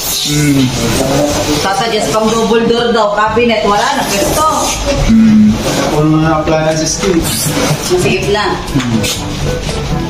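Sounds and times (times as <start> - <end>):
people talking: 0.0 - 9.1.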